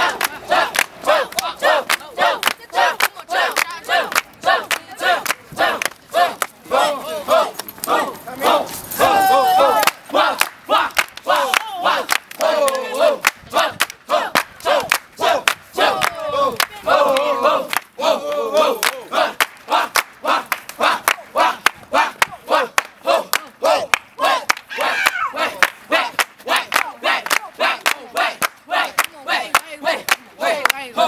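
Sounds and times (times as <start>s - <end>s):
rhythmic hand claps: 0.0s - 8.2s, 9.7s - 31.0s
crowd shouting and cheering: 0.0s - 31.0s.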